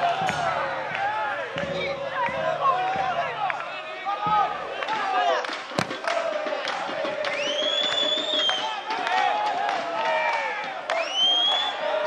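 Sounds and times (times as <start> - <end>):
crowd shouting and cheering: 0.0 - 12.0
sharp thud: 5.8 - 6.0
long high whistle: 7.4 - 8.7, 11.0 - 11.8.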